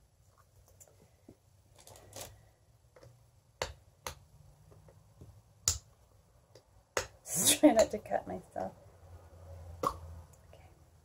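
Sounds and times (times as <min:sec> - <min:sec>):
faint handling noise: 0:00.2 - 0:03.2.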